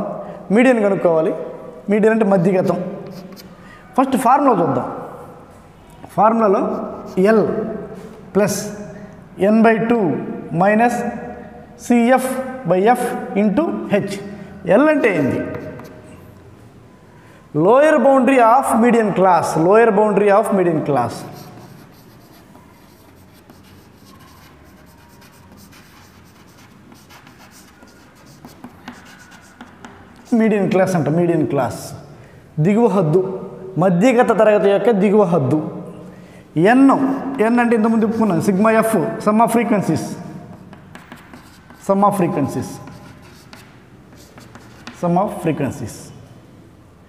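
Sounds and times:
chalk scratching on chalkboard: 0:02.6 - 0:03.6, 0:06.6 - 0:07.5, 0:15.0 - 0:16.4, 0:21.1 - 0:31.0, 0:40.4 - 0:45.4
chalk tapping on chalkboard: 0:15.1 - 0:16.2, 0:21.2 - 0:31.0, 0:40.5 - 0:45.1.

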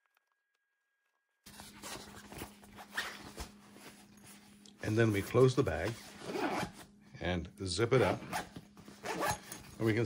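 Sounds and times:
steady low hum: 0:01.4 - 0:10.0
fabric rustling: 0:01.5 - 0:07.0.

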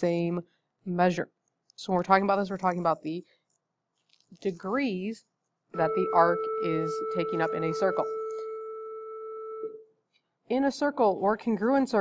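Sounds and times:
steady pitched tone: 0:05.8 - 0:09.8.

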